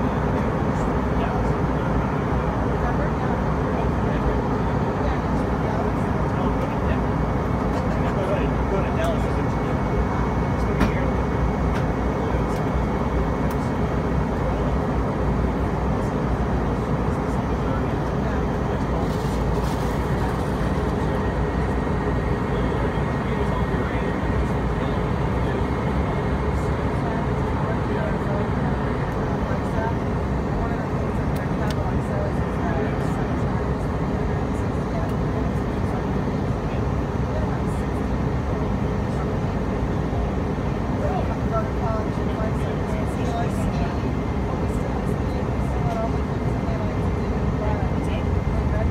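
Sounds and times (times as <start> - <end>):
jet engines and airflow in cabin: 0.0 - 48.9.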